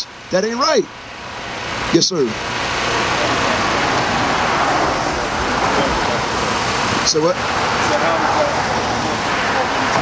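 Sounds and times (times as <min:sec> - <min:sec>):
road traffic rushing by: 0:00.0 - 0:10.0
faint voices: 0:01.8 - 0:10.0.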